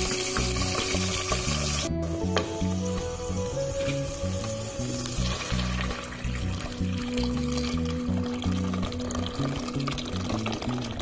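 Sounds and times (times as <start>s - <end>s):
background music with steady beat: 0.0s - 11.0s
sauce sizzling in hot oil: 0.0s - 11.0s.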